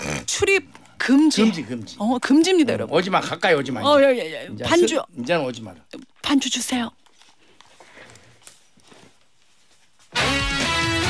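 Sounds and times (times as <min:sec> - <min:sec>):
headphones rustling and clicking: 0:06.9 - 0:10.2.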